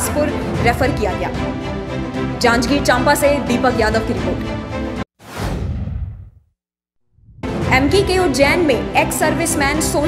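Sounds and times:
whoosh sound effect: 0:05.2 - 0:06.4.

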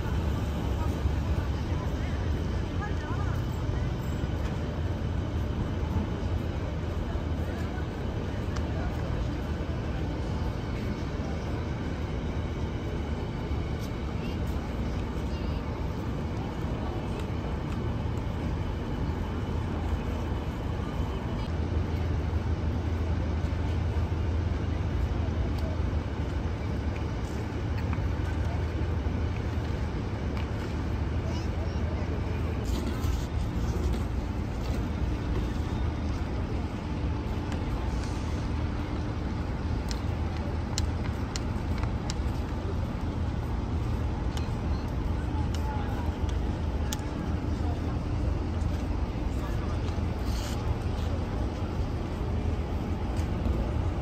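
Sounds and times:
faint voices: 0:00.0 - 0:54.0
low traffic rumble: 0:00.0 - 0:54.0.

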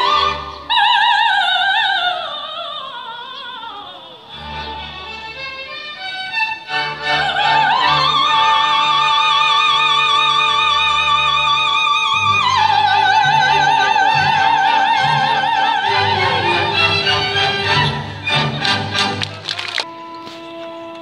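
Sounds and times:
symphony orchestra: 0:00.0 - 0:02.0, 0:04.2 - 0:21.0
woman singing opera: 0:00.0 - 0:04.5, 0:06.8 - 0:18.4.

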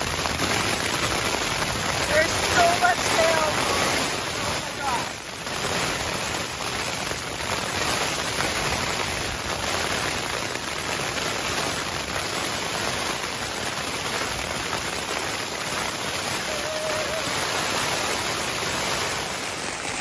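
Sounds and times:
rain pelting tent fabric: 0:00.0 - 0:20.0.

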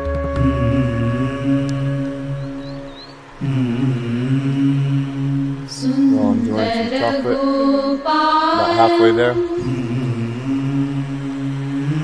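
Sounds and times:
man chanting: 0:03.4 - 0:07.8, 0:08.5 - 0:12.0.

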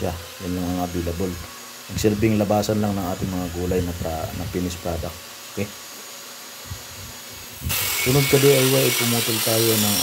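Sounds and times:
grinder cutting steel: 0:00.0 - 0:06.5, 0:07.2 - 0:10.0
angle grinder running: 0:00.0 - 0:10.0.

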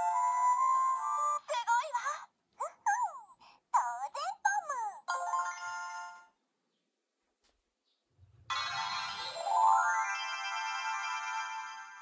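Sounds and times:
bright electronic jingle: 0:08.5 - 0:12.0
toy speaker electronic chime: 0:08.5 - 0:12.0.

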